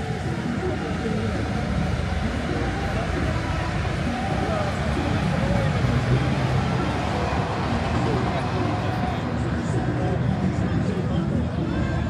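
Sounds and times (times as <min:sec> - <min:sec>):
faint distant voices: 0:00.0 - 0:12.0
train passing rumble: 0:00.0 - 0:12.0.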